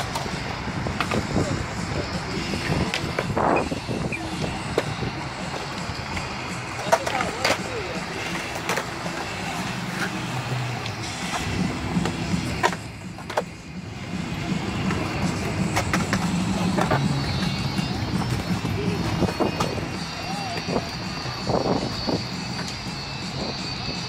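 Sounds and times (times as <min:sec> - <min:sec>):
skateboard wheels rumbling on concrete: 0:00.0 - 0:24.0
skateboards clacking on concrete: 0:00.0 - 0:24.0.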